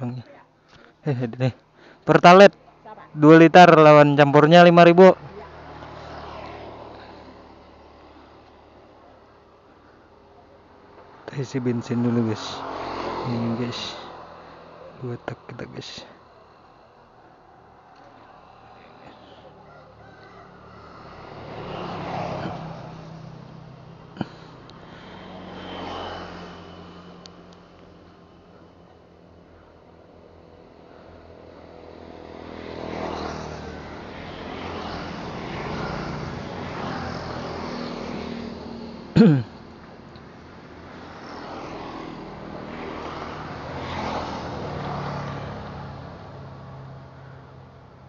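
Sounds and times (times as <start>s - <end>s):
vehicles passing on road: 0.0s - 48.0s.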